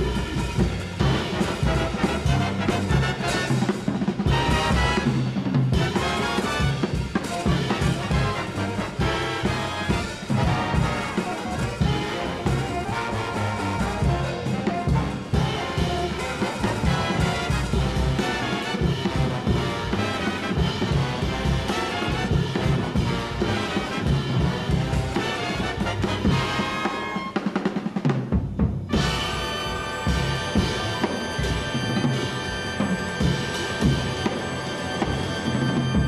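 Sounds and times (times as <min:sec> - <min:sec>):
drum roll: 0:00.0 - 0:36.0
jazz big band playing: 0:00.0 - 0:36.0.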